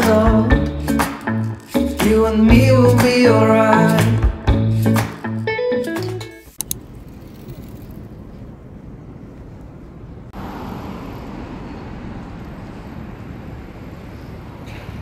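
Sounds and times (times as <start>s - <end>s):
background music: 0.0s - 6.5s.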